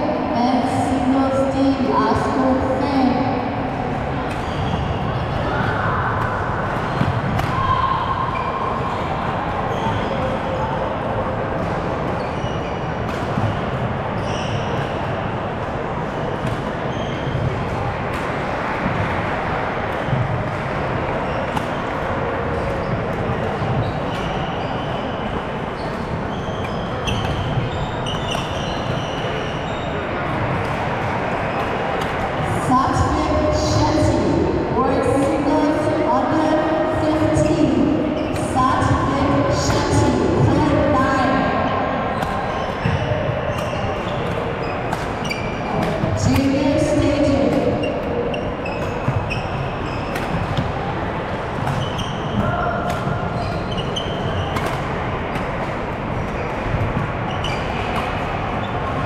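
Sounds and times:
hubbub of many voices: 0.0s - 59.0s
shoe squeaks on wooden court: 4.3s - 5.2s, 9.6s - 10.5s, 12.1s - 15.0s, 16.4s - 17.5s, 22.5s - 30.2s, 37.4s - 38.5s, 42.1s - 46.6s, 47.4s - 50.7s, 51.6s - 54.9s, 56.3s - 58.8s
racket hitting shuttlecock: 6.2s - 7.7s, 21.5s - 22.8s, 30.6s - 32.4s, 42.1s - 49.3s, 49.9s - 50.8s, 51.4s - 55.9s.

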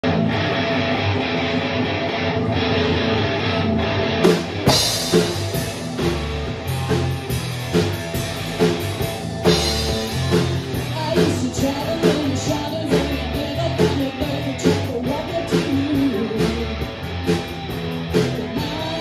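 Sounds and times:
electric guitars and bass: 0.0s - 19.0s
drum kit beat: 4.1s - 19.0s.

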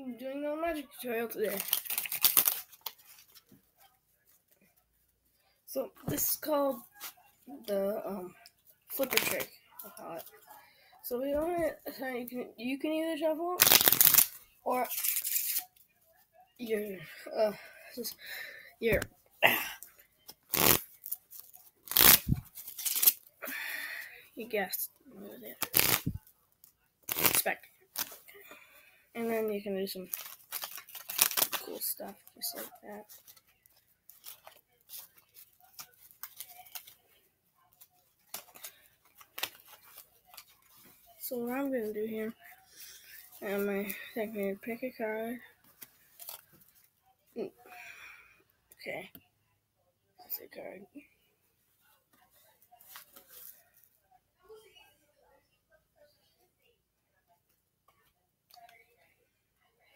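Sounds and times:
playing cards being shuffled: 1.5s - 3.4s, 9.0s - 9.5s, 13.6s - 15.7s, 20.4s - 23.2s, 25.5s - 26.2s, 27.1s - 28.2s, 30.1s - 32.0s.

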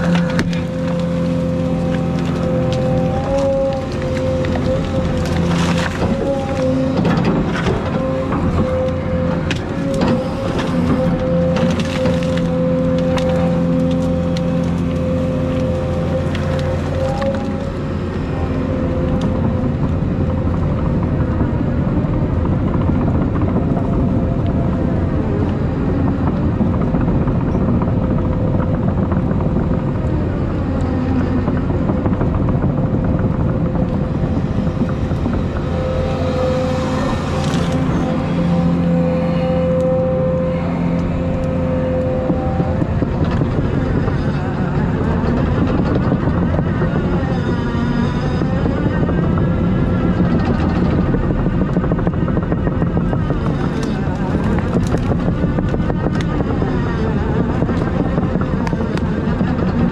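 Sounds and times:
brush and branches crackling: 0.0s - 20.6s, 34.2s - 46.4s, 52.9s - 56.5s
excavator diesel engine under load: 0.0s - 59.9s.

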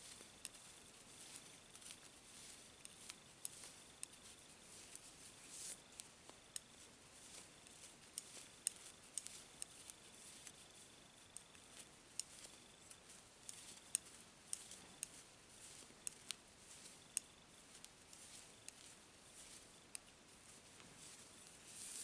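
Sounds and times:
knitting needles clicking: 0.0s - 22.0s.

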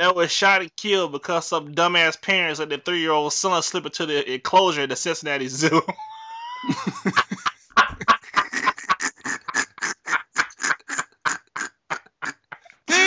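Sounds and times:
man laughing hard: 5.6s - 13.0s.

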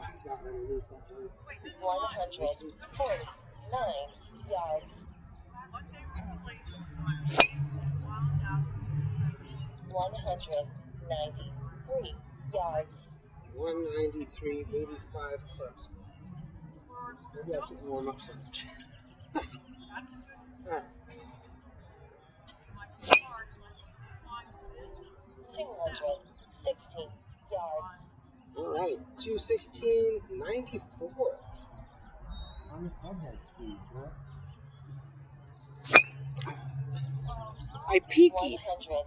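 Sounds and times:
golf club striking ball: 7.4s - 7.6s, 23.0s - 23.4s, 35.9s - 36.2s.

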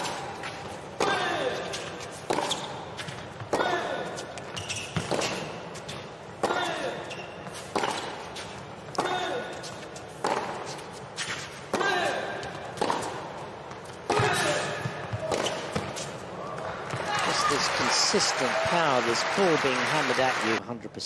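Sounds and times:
rackets hitting tennis ball: 0.0s - 18.3s.

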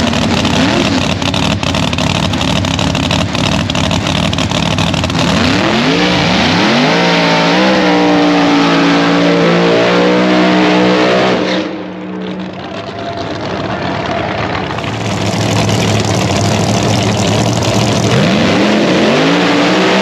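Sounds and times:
drag car engine idling and revving: 0.0s - 20.0s.

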